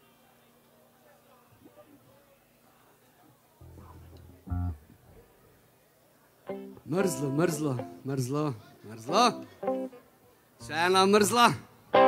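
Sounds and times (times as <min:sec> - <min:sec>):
faint stage background: 0:00.0 - 0:12.0
guitar chord: 0:03.6 - 0:04.9
low held note: 0:03.6 - 0:05.2.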